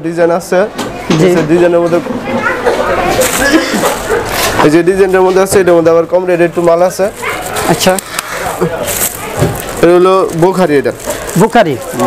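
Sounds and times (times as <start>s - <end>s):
plastic wrap crinkling: 2.4s - 12.0s.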